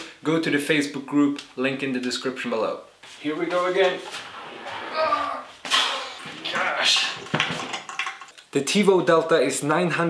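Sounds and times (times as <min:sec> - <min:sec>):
man grunting with effort: 0:04.9 - 0:07.2.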